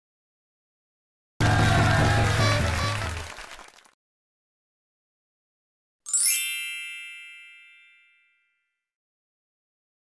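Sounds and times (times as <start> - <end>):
bright sparkling chime: 6.1 - 8.8.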